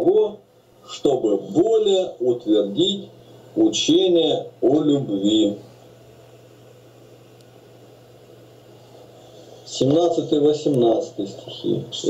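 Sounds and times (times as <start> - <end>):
background hiss: 0.0 - 12.0
low constant hum: 0.0 - 12.0.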